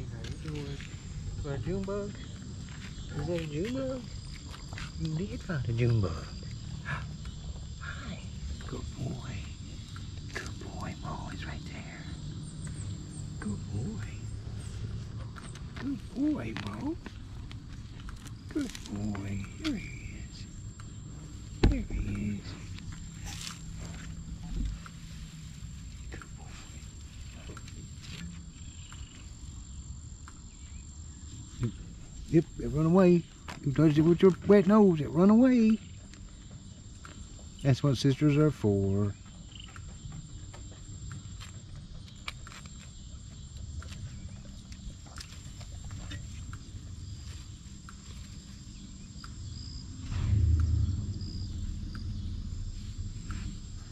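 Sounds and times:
steady low rumble: 0:00.0 - 0:34.2, 0:43.3 - 0:53.9
low thump: 0:21.6 - 0:22.2, 0:49.9 - 0:53.9
small clicks and rustles: 0:39.2 - 0:49.5
high-pitched whine: 0:49.8 - 0:53.9.

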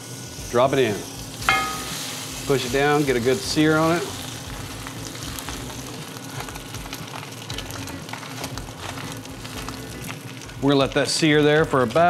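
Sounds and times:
steak sizzling in hot skillet: 0:00.0 - 0:12.0.

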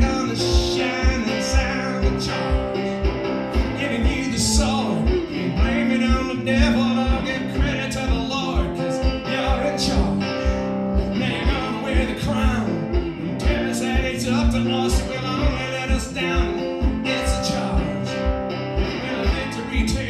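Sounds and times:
slide acoustic guitar: 0:00.0 - 0:20.0.

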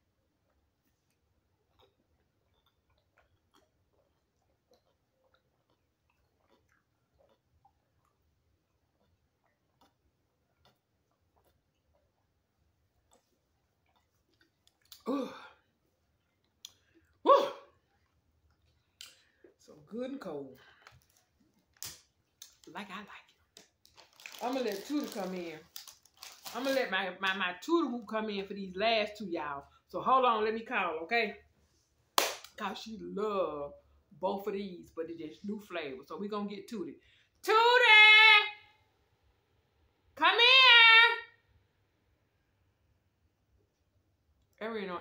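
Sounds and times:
swallowing: 0:01.6 - 0:12.4
woman speaking: 0:19.6 - 0:20.7, 0:22.6 - 0:23.3, 0:24.3 - 0:25.8, 0:26.5 - 0:31.4, 0:32.6 - 0:38.7, 0:40.2 - 0:41.3, 0:44.6 - 0:45.0
woman shouting a name: 0:37.5 - 0:38.6, 0:40.2 - 0:41.3.

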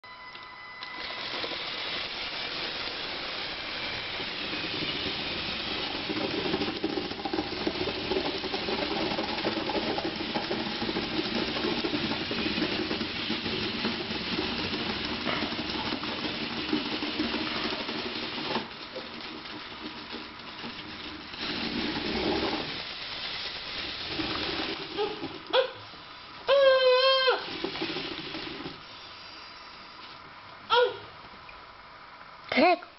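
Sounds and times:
toy tank motors and tracks running: 0:00.8 - 0:25.6, 0:26.6 - 0:29.0
wavering voice-like call: 0:26.5 - 0:27.6, 0:30.7 - 0:31.2.

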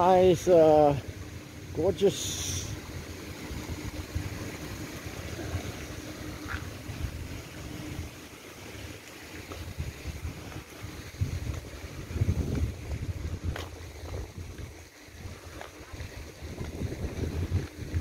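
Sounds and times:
faint steady hum: 0:00.0 - 0:18.0
wind buffeting microphone: 0:09.5 - 0:18.0.

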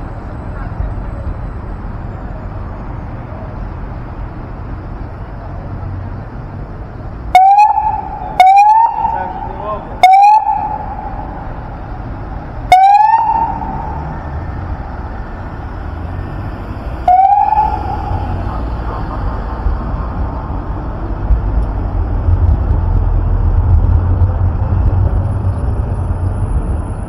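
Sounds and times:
street traffic: 0:00.0 - 0:27.0
police siren blips: 0:07.3 - 0:11.7, 0:12.6 - 0:14.3, 0:17.0 - 0:18.9.

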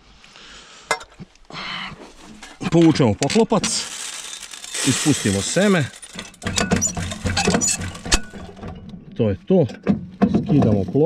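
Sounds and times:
seeds pattering: 0:02.5 - 0:07.8.

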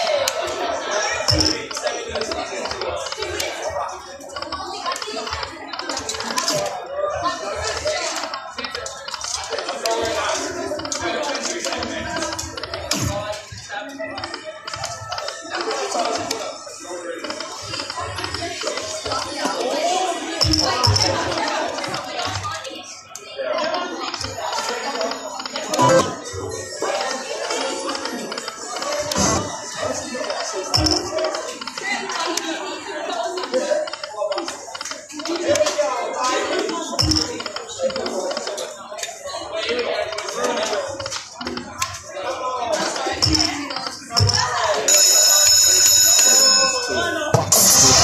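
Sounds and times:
voices talking: 0:00.0 - 0:48.0
slot machine electronic music: 0:24.4 - 0:28.9, 0:43.0 - 0:48.0.

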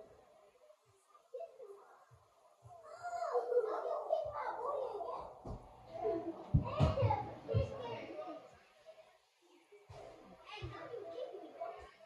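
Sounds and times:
children's voices: 0:01.0 - 0:08.5, 0:10.4 - 0:12.0.

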